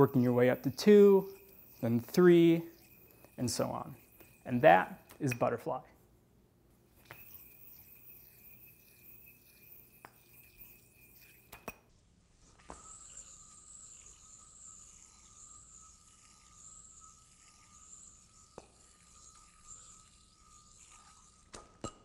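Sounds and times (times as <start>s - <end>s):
spinning yoyo whine: 0.0s - 5.6s, 6.9s - 22.0s.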